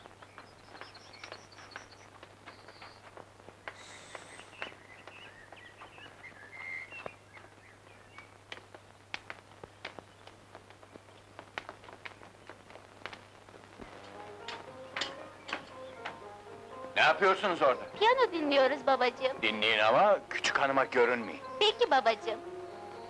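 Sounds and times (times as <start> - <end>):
birds chirping faintly: 0.0 - 23.0
low steady hum: 12.8 - 16.8
faint piano music: 13.8 - 23.0.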